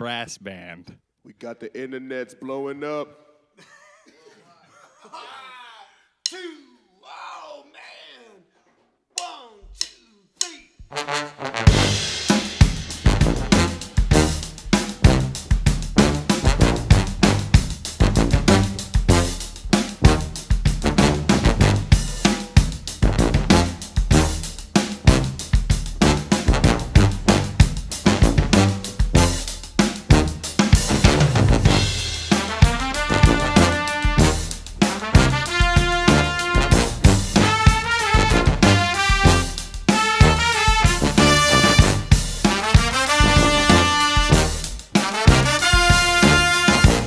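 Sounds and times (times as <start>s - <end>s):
drum kit groove: 9.2s - 47.0s
brass band playing: 10.9s - 47.0s.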